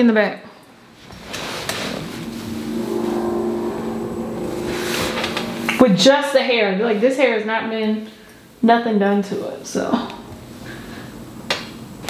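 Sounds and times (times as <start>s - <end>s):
rushing noise: 2.0s - 6.6s
machine hum: 2.0s - 7.0s.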